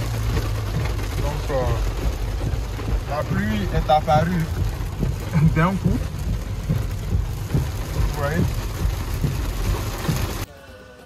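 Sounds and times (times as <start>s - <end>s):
rain on car roof and windows: 0.0s - 11.0s.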